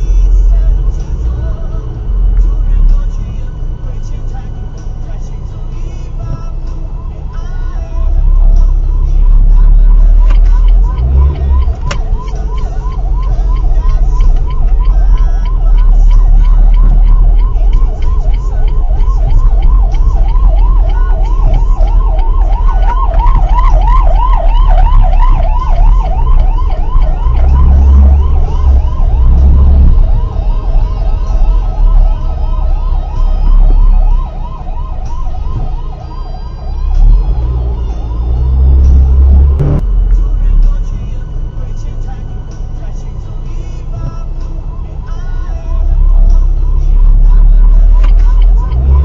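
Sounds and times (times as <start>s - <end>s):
road and engine rumble: 0.0s - 49.0s
ambulance siren yelping: 5.9s - 49.0s.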